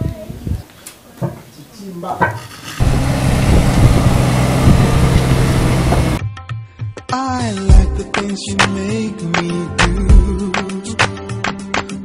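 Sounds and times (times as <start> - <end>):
car engine running: 2.8 - 6.2.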